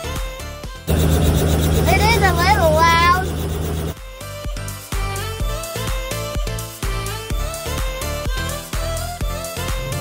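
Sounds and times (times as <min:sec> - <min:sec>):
background music: 0:00.0 - 0:10.0
steady low hum: 0:00.9 - 0:04.0
high-pitched voice calling out: 0:01.8 - 0:03.2.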